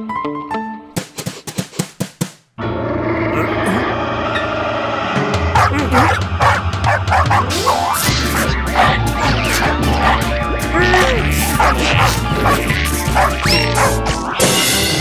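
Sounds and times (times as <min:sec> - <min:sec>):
cartoon dogs growling: 0:03.0 - 0:04.1, 0:05.5 - 0:14.5
cartoon dogs barking and yapping: 0:05.6 - 0:14.5.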